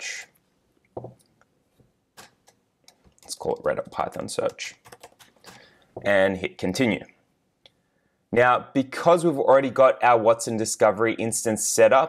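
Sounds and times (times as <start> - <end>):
keyboard and mouse clicks: 2.2 - 5.7.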